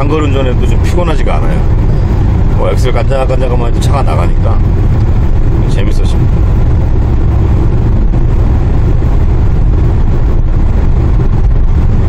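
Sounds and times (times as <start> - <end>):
engine and road noise in cabin: 0.0 - 12.0.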